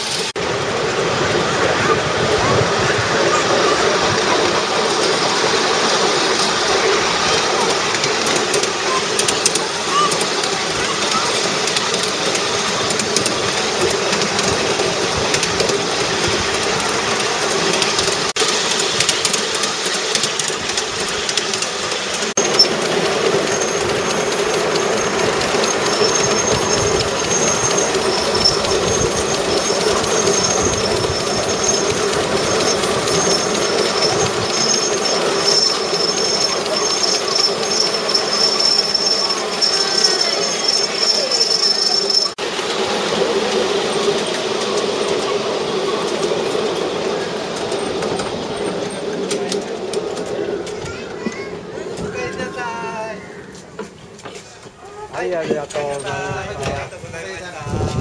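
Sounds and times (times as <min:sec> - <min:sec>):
train wheels clattering on rails: 0:00.0 - 0:58.0
high-pitched squeal: 0:22.4 - 0:49.1.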